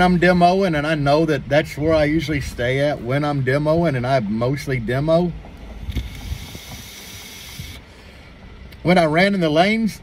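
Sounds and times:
man speaking: 0.0s - 5.4s
vape drag hiss: 5.8s - 7.9s.

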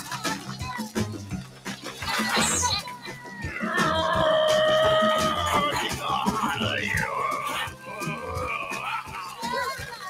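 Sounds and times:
squeaky cartoon gibberish voices: 1.8s - 10.0s.

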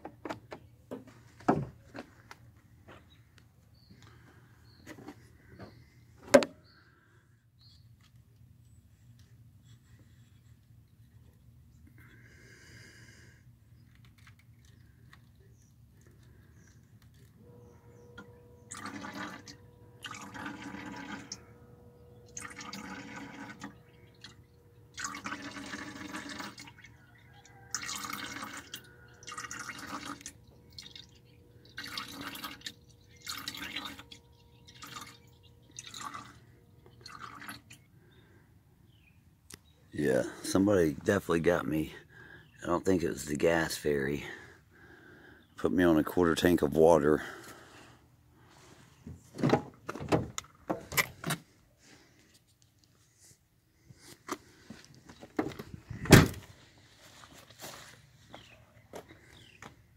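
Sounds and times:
electric fuel pump whining: 14.0s - 38.5s
fuel splashing into plastic jug: 18.7s - 21.4s, 22.2s - 37.9s.

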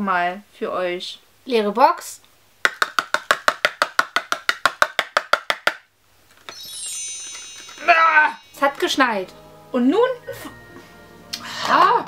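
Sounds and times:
woman's voice: 0.0s - 2.2s, 7.8s - 10.6s, 11.4s - 12.0s
rapid woody clicks: 2.6s - 6.4s
shimmering sparkle chime effect: 6.5s - 12.0s.

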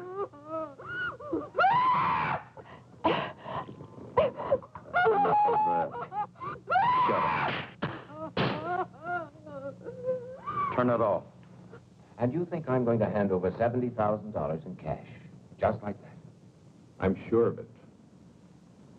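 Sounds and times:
woman wailing and moaning: 0.0s - 3.6s, 4.2s - 10.8s.

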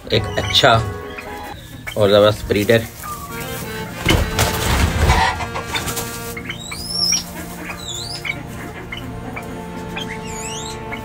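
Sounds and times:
high sliding bird chirps: 0.0s - 2.2s, 6.3s - 8.4s
background music with held tones: 0.0s - 11.0s
loud rustle: 2.5s - 6.4s.

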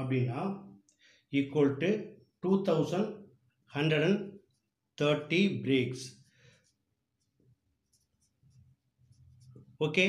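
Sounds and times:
marker scratching on paper: 5.9s - 10.0s.

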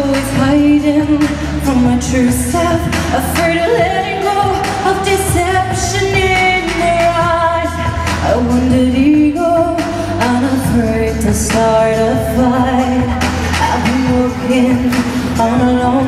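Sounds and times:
backing track with drums: 0.0s - 16.0s
woman singing pop song: 0.0s - 16.0s.

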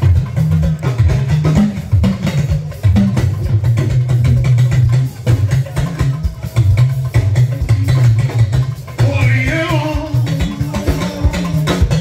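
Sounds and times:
talking drums: 0.0s - 12.0s.

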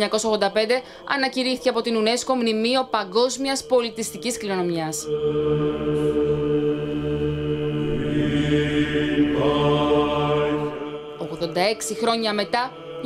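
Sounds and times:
voices chanting long notes: 0.0s - 13.0s
low drone: 3.2s - 13.0s.

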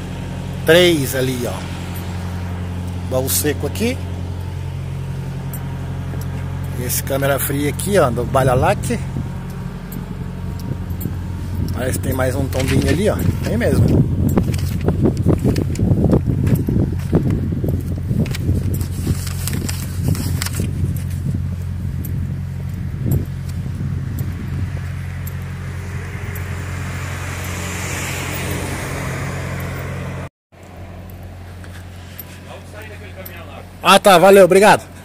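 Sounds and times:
diesel truck engine idling: 0.0s - 35.0s.

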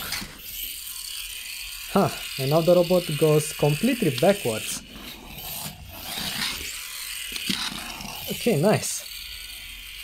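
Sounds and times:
small motors whirring: 0.0s - 10.0s.

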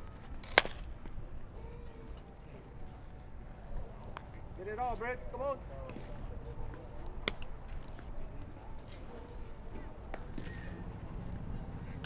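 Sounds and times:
faint distant voices: 0.0s - 12.0s
baseball bat crack: 0.4s - 1.2s, 7.2s - 7.5s.

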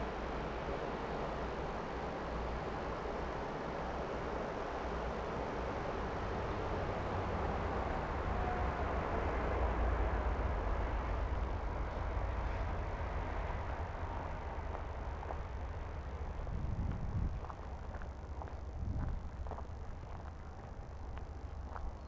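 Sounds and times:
wind and movement noise on microphone: 0.0s - 22.0s.

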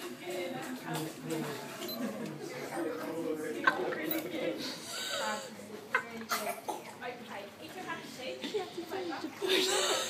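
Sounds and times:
voices in indoor pool: 0.0s - 10.0s.

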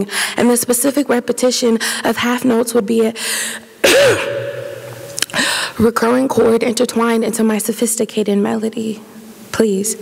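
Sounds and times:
woman coughing: 3.8s - 5.5s
quick breath in: 5.3s - 5.8s.

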